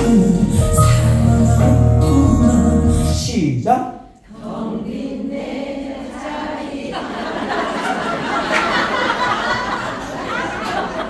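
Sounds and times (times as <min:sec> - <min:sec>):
backing music falling pitch slide: 0:00.0 - 0:03.4
women singing unaccompanied: 0:04.3 - 0:07.0.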